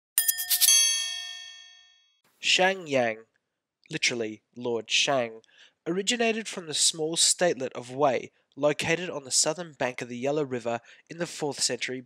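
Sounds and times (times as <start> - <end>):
metallic chime ringing: 0.2 - 2.0.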